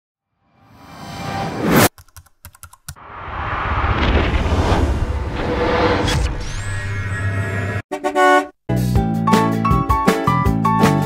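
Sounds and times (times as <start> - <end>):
deep rumble: 3.0 - 7.8
rising whoosh: 3.0 - 7.8.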